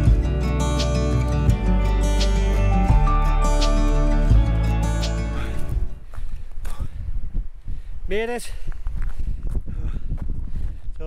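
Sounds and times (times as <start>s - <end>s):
footsteps on a path: 5.3s - 7.9s, 8.5s - 11.0s
wind rumble on microphone: 5.6s - 11.0s.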